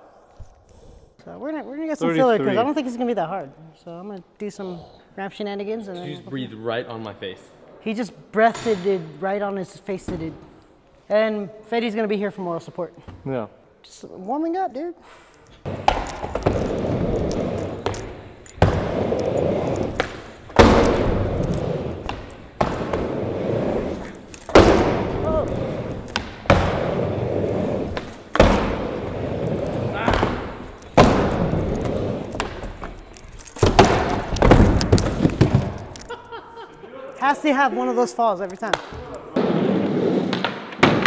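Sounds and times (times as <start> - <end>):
skateboard clattering impacts: 15.7 - 33.0, 33.6 - 36.0, 38.7 - 41.0
skateboard wheels rolling: 15.7 - 36.1, 39.3 - 41.0
skateboard knocking on coping: 33.6 - 35.9.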